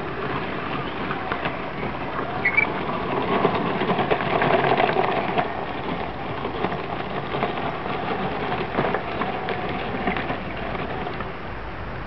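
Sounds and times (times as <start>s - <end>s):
toy tank tracks clattering: 0.0s - 11.3s.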